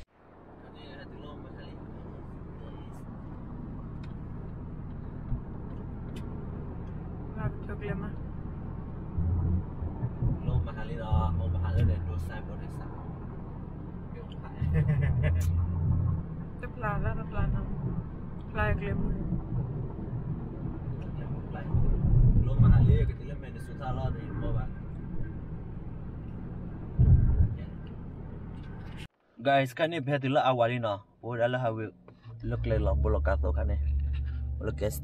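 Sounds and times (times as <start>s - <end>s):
car road and engine noise: 0.0s - 35.0s.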